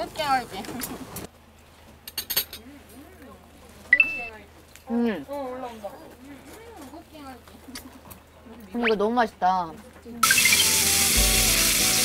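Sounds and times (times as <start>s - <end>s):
cutlery and dishes clinking: 2.1s - 2.6s
faint chatter: 2.4s - 10.4s
high-pitched squeal: 10.2s - 12.0s.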